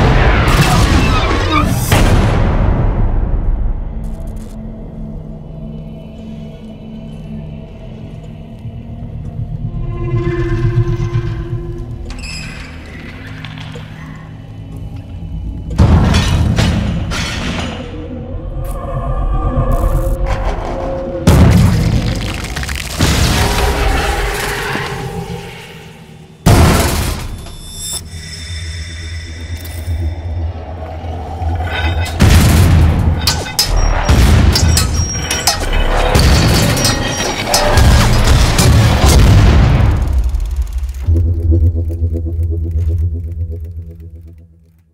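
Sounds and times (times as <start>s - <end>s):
rumble: 0.0s - 44.9s
trailer music: 0.0s - 44.9s
low hum: 27.4s - 44.9s.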